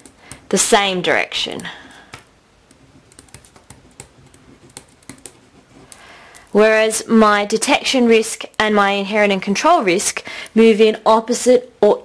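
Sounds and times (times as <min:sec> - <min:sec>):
pen writing on paper: 0:02.7 - 0:06.0.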